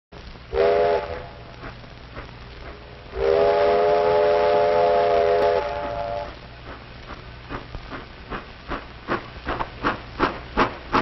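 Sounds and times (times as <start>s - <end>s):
film soundtrack hiss and crackle: 0.1s - 11.0s
train whistle blowing: 0.5s - 1.4s, 3.1s - 6.4s.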